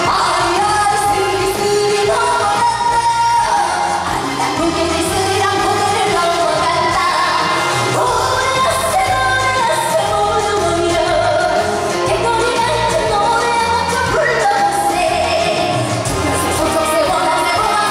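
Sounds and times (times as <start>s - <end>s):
loud amplified backing music: 0.0s - 17.9s
woman singing into microphone: 0.0s - 17.9s.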